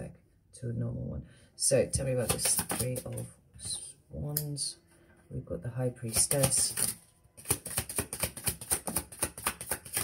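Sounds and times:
cards being shuffled: 0:02.2 - 0:03.2, 0:06.1 - 0:10.0.

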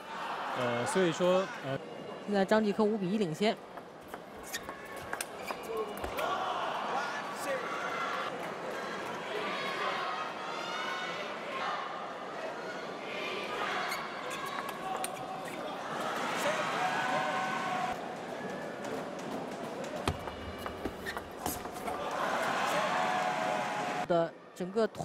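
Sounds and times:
crowd shouting and cheering: 0:00.0 - 0:02.0, 0:05.7 - 0:20.9, 0:21.5 - 0:24.5.

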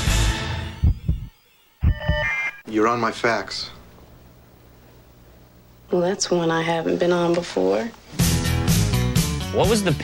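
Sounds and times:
chord of steady beep tones: 0:00.6 - 0:02.6
low thumps: 0:00.8 - 0:02.3.

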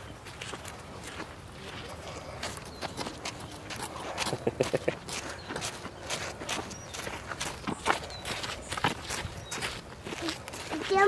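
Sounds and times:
footsteps crunching on dirt trail: 0:00.0 - 0:11.0.

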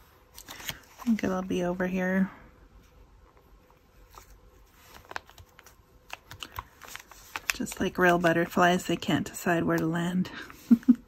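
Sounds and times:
paper rustling: 0:00.3 - 0:01.4, 0:03.7 - 0:08.6.

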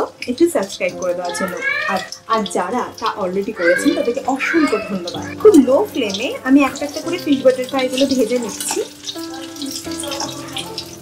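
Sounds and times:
person talking: 0:00.0 - 0:10.8
fish frying in hot oil: 0:00.0 - 0:11.0.

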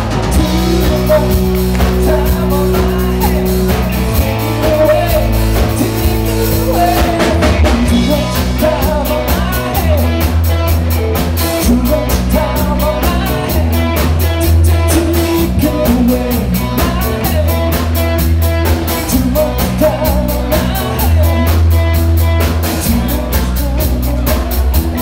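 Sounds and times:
lead vocalist singing: 0:00.0 - 0:25.0
rock band playing: 0:00.0 - 0:25.0.

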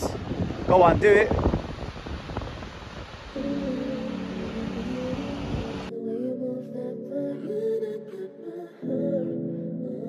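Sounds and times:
wind and surf hiss: 0:00.0 - 0:06.4
slow soft background music: 0:03.3 - 0:10.0.

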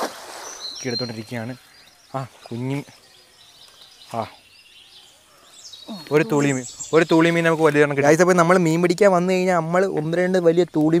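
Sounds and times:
man speaking: 0:05.9 - 0:11.0.

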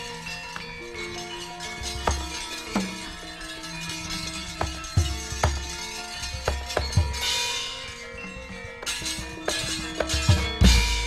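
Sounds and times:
ringing struck tones: 0:00.0 - 0:11.0.

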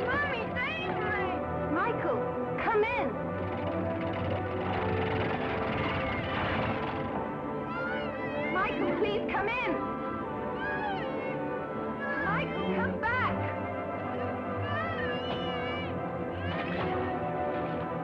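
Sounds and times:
film score music: 0:00.0 - 0:18.0.

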